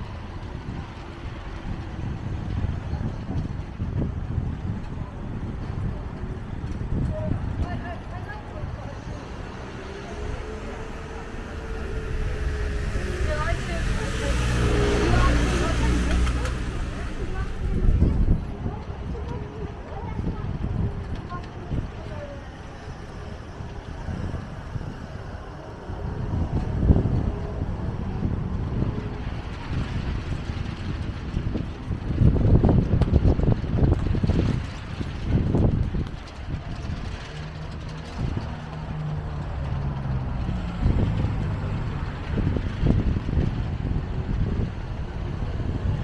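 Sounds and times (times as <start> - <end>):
steady engine hum: 0.0 - 46.0
traffic rumbling: 0.0 - 46.0
wind buffeting microphone: 0.0 - 46.0.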